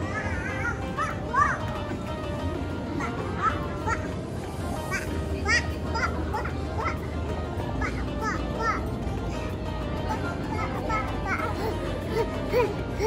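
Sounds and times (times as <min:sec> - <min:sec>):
toddler squealing and babbling: 0:00.0 - 0:01.9, 0:02.9 - 0:07.1, 0:10.1 - 0:13.0
background music: 0:00.0 - 0:13.0.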